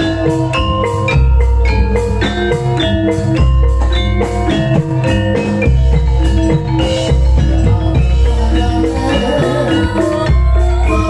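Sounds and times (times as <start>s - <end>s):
drums: 0.0s - 11.0s
metallophone notes: 0.0s - 11.0s.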